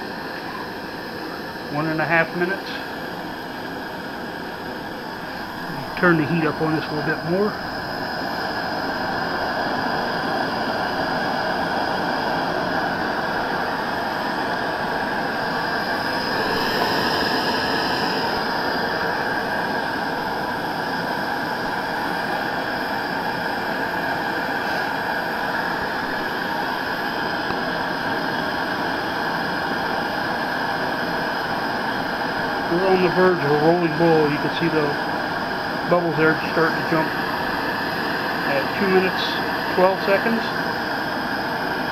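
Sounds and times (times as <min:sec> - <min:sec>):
gas stove burner roaring: 0:00.0 - 0:41.9.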